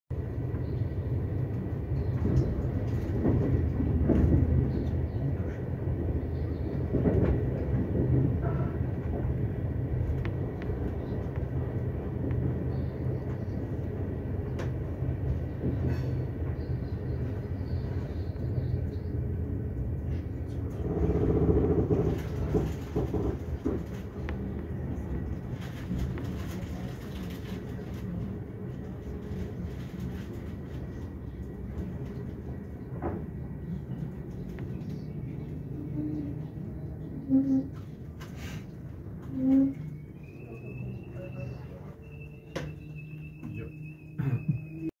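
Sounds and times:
train rumble inside carriage: 0.1 - 44.9
wheels clicking over rail joints: 20.8 - 24.6.

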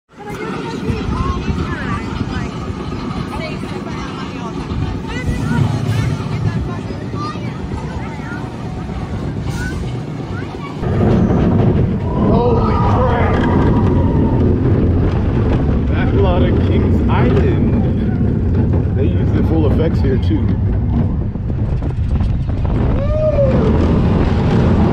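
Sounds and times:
people's voices: 0.1 - 21.3
roller coaster rumbling on track: 0.1 - 24.9
wind on microphone: 0.3 - 24.9.

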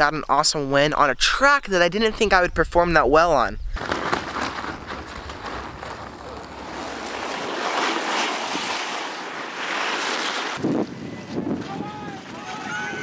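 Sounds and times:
wind: 0.0 - 13.0
ice skates scraping on ice: 3.8 - 11.5.

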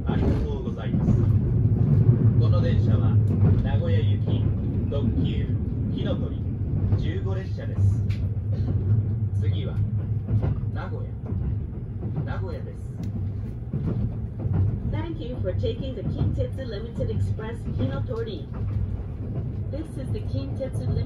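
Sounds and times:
train rumble inside cabin: 0.0 - 21.0.

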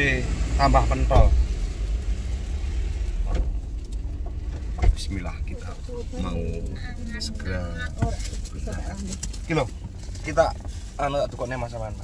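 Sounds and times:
car cabin low rumble: 0.0 - 12.0.

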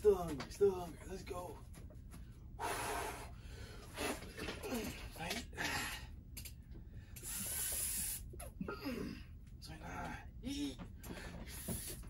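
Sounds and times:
man breathing forcefully: 2.6 - 4.3, 7.0 - 8.3, 10.4 - 12.0.

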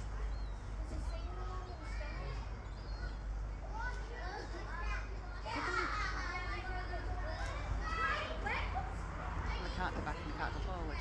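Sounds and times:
distant children chattering: 0.0 - 11.0.

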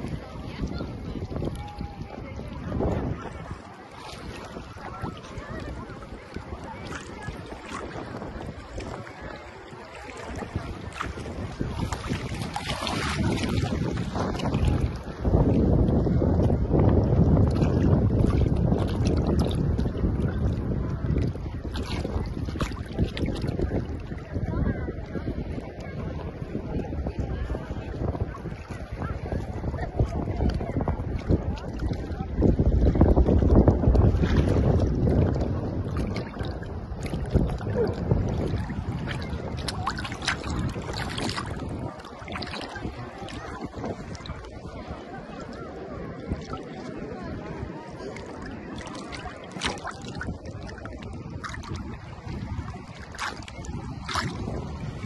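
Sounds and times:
water splashing: 0.0 - 55.0
wind buffeting microphone: 0.0 - 55.0.

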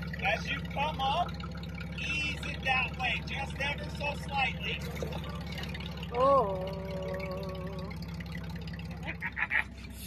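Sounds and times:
engine running low and steady: 0.0 - 10.0.

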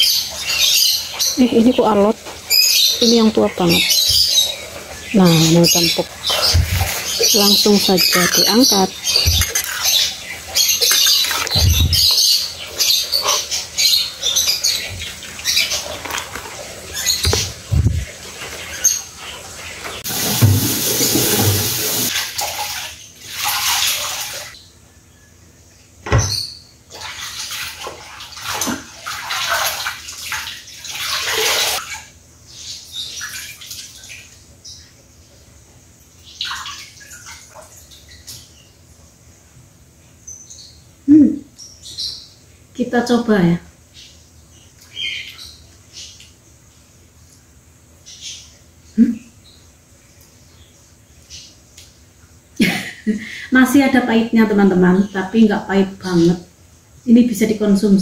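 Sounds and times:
water running into sink: 14.7 - 24.5.

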